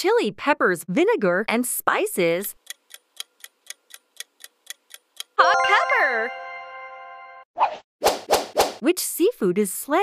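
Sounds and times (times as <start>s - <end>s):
countdown timer ticking: 2.5s - 7.4s
answer-reveal jingle: 5.4s - 7.5s.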